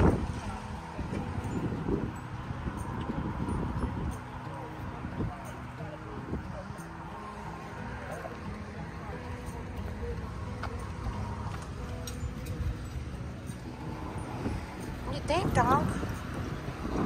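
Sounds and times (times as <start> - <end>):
wind rumbling on microphone: 0.0 - 7.1, 11.0 - 17.0.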